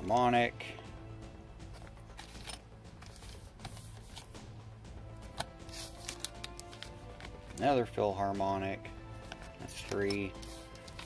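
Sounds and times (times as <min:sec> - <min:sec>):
soft background music: 0:00.0 - 0:11.0
plastic sleeves crinkling: 0:05.5 - 0:07.7, 0:09.7 - 0:11.0.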